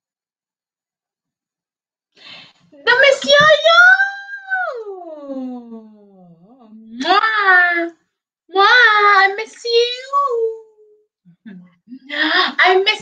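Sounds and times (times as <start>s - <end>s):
woman making wordless vocal sounds: 4.2s - 7.3s.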